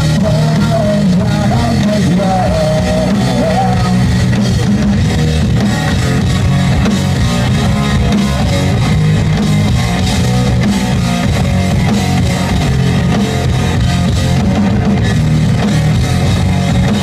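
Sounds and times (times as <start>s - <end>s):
drum kit: 0.0s - 17.0s
electric guitars: 0.0s - 17.0s.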